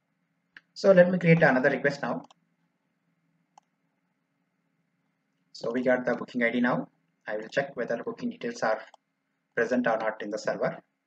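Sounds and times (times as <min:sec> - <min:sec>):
faint computer mouse click: 0:02.2 - 0:02.4.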